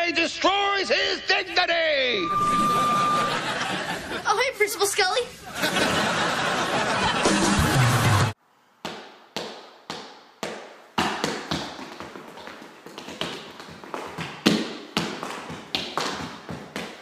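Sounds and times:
tap-dance taps on hard floor: 8.9s - 17.0s.

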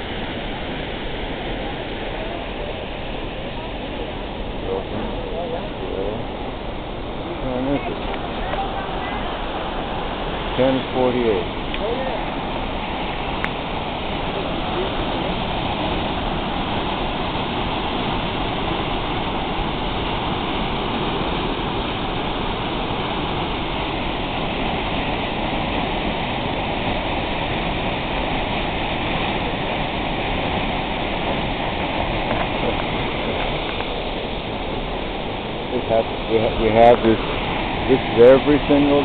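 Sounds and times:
waterfall rushing: 0.0s - 39.0s.

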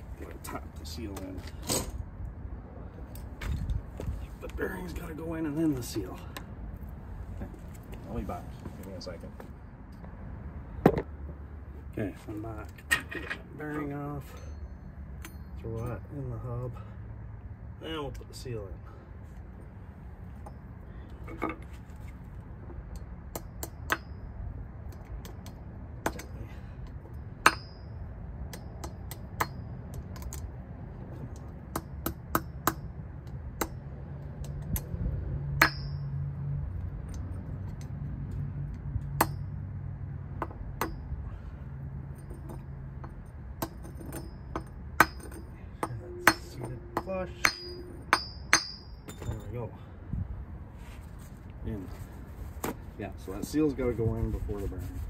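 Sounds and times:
hammer tapping metal: 27.4s - 30.4s, 35.6s - 36.2s, 42.2s - 49.3s.

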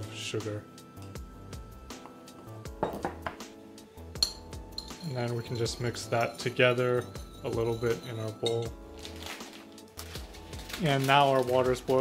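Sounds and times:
background music: 0.0s - 12.0s
ceramic jar knocks and clinks: 2.8s - 3.4s, 4.2s - 8.8s.

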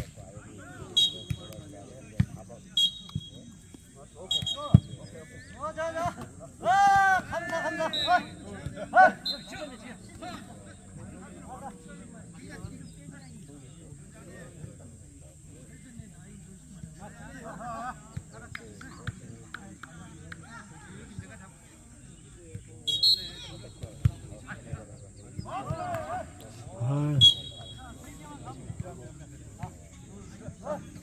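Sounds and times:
players shouting: 5.6s - 10.5s, 25.4s - 28.6s.

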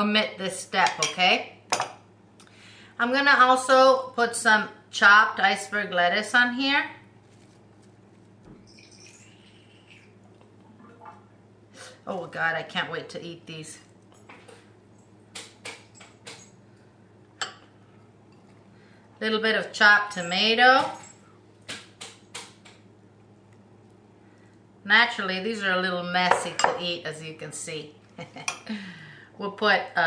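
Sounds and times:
steady low hum: 0.0s - 30.0s
lettuce rustling: 7.1s - 8.4s.

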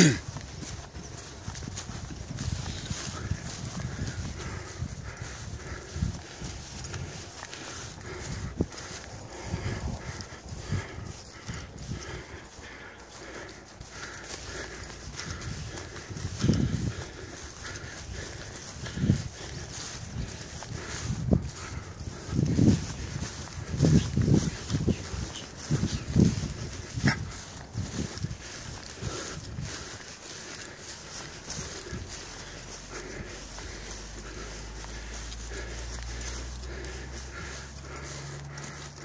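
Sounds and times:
footsteps through tall grass: 0.0s - 39.0s
wind buffeting microphone: 0.0s - 39.0s.

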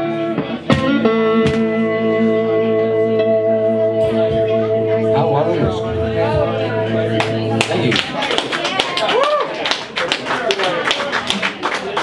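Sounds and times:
blues electric guitar: 0.0s - 8.6s.

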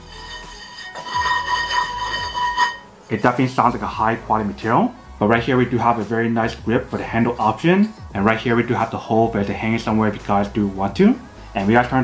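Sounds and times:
frying pan ringing when struck: 0.2s - 2.9s.

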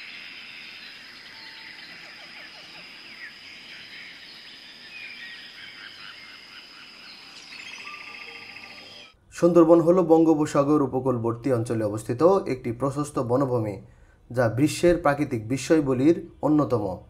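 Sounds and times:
high-pitched insect drone: 0.0s - 9.1s
birds chirping and calling: 0.0s - 9.2s.

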